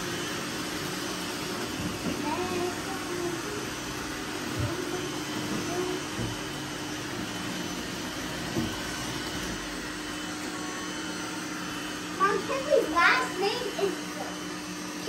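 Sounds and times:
robot vacuums whirring: 0:00.0 - 0:15.0.

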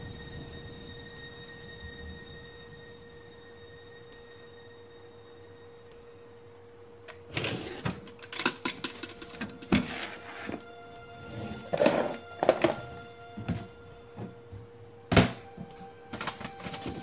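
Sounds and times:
held tone of background score: 0:00.0 - 0:08.3, 0:08.9 - 0:17.0
wooden drawers rummaged through: 0:11.4 - 0:12.8.

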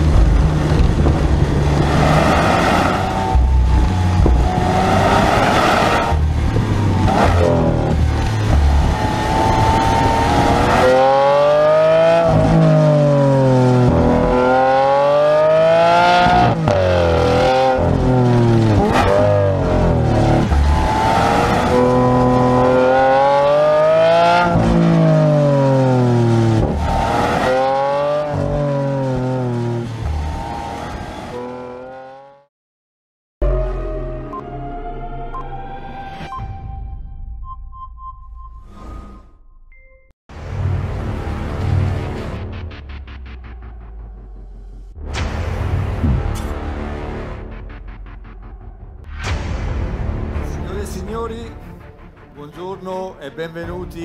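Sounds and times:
car engine revving: 0:00.0 - 0:32.5
road noise: 0:00.0 - 0:32.5, 0:40.3 - 0:54.0.

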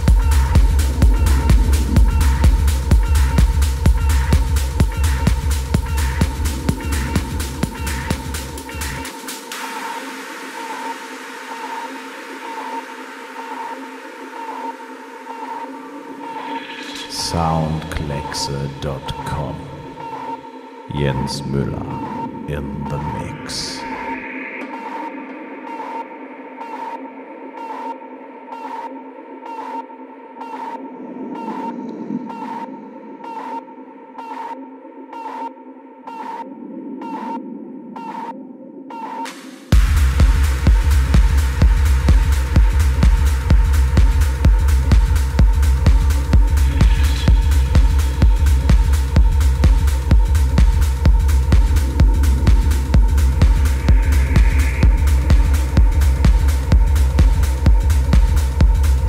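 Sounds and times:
swishing noise sweep: 0:00.0 - 0:03.5
low drone: 0:00.0 - 0:09.2
synth drone: 0:00.0 - 0:59.0.

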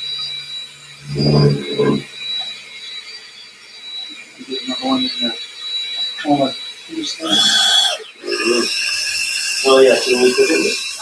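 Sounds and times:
drill mixing in plastic bucket: 0:00.0 - 0:11.0.

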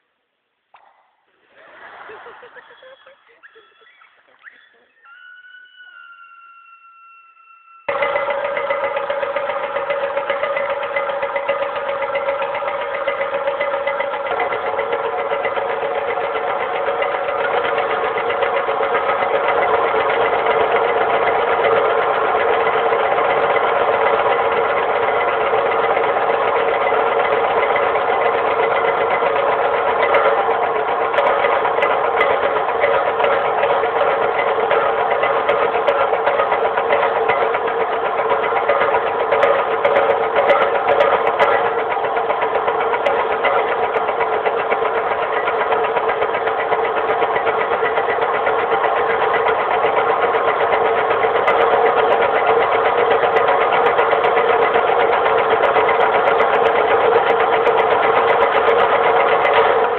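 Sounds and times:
taiko drums rolling: 0:07.8 - 0:59.9.

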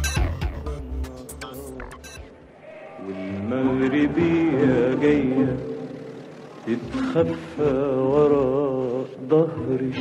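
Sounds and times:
man chanting poetry: 0:03.0 - 0:06.0, 0:06.6 - 0:10.0.

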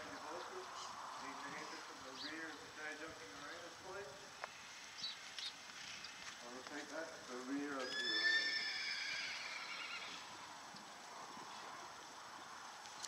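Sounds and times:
horse whinnying: 0:07.8 - 0:10.4.

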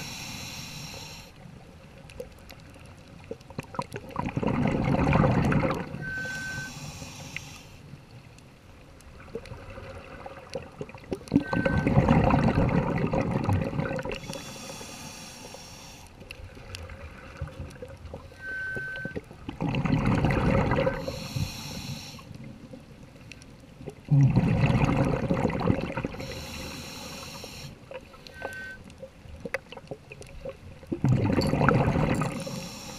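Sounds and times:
regulator hissing inhale: 0:00.0 - 0:01.4, 0:06.0 - 0:08.0, 0:14.2 - 0:16.2, 0:21.0 - 0:22.4, 0:26.2 - 0:28.8, 0:32.3 - 0:32.9
diver exhaling bubbles: 0:04.0 - 0:06.2, 0:11.2 - 0:14.4, 0:19.4 - 0:21.3, 0:24.0 - 0:26.4, 0:30.9 - 0:32.6
high regulator whistle: 0:06.0 - 0:06.9, 0:18.4 - 0:19.2.

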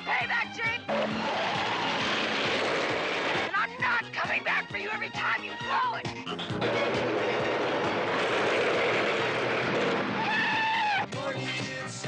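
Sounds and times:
heavy truck passing: 0:06.3 - 0:10.6.

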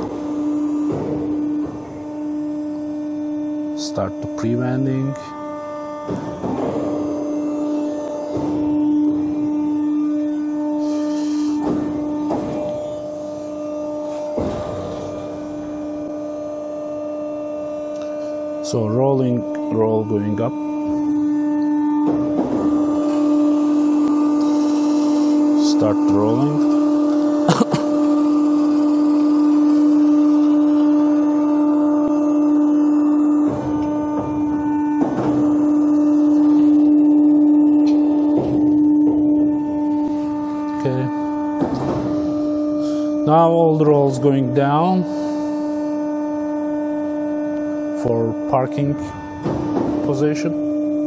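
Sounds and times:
hydraulic power unit humming: 0:00.0 - 0:51.0.

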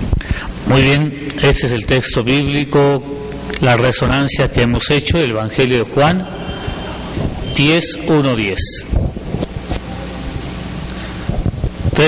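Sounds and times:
low electrical hum: 0:00.0 - 0:12.0
microphone hiss: 0:00.0 - 0:12.0.

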